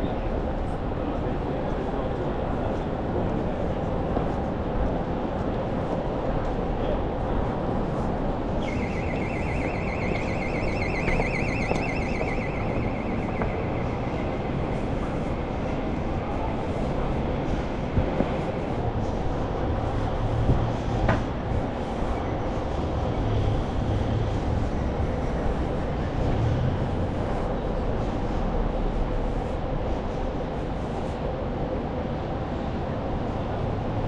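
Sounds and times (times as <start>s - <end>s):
city street noise: 0.0s - 34.0s
high fast electronic beeping: 8.6s - 15.5s.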